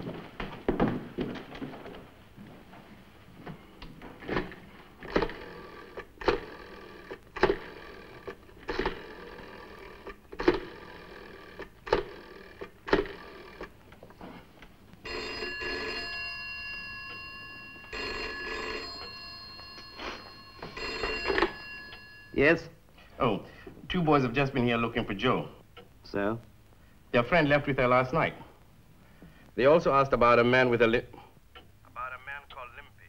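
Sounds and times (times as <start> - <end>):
telephone bell ringing: 5.0 - 13.7, 15.0 - 22.8.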